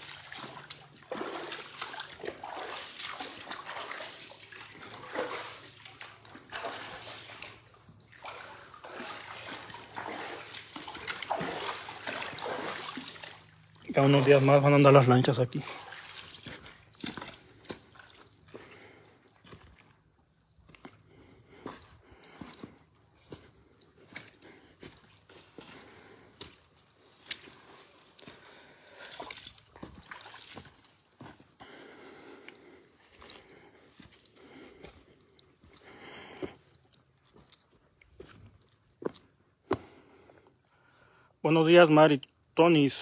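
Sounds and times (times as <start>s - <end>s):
footsteps on stony ground: 4.7s - 31.8s, 32.4s - 40.0s.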